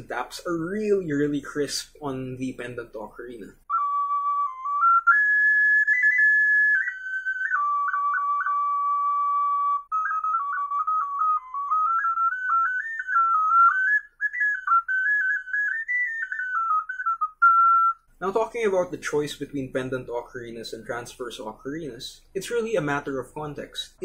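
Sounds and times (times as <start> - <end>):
ocarina melody: 2.9 - 19.2.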